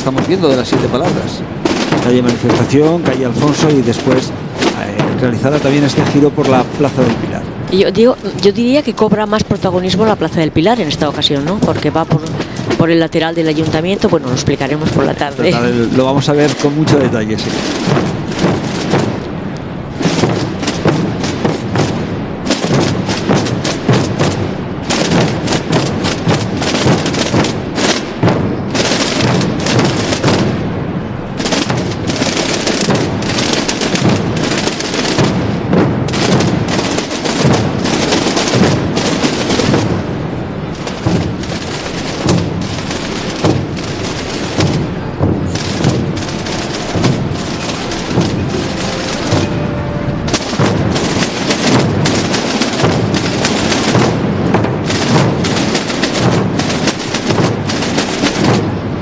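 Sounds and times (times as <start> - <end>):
many drums rolling: 0.0 - 59.0.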